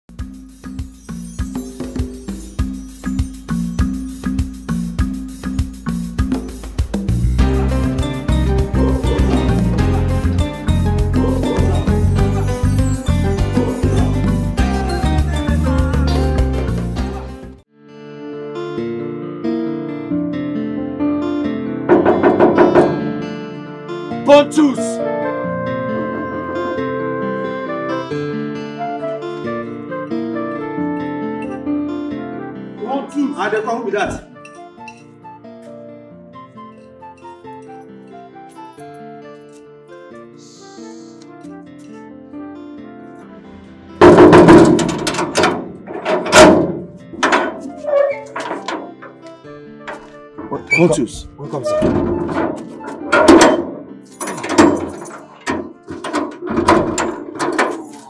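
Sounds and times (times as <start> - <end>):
acoustic guitar music: 0.1 - 58.0
knuckles knocking on door: 21.9 - 23.0
fist banging on door: 21.9 - 23.1, 44.0 - 47.8, 51.8 - 57.8.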